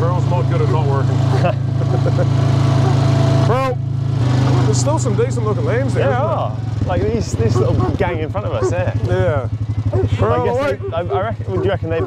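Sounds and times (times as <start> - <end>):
quad bike engine running: 0.0 - 12.0.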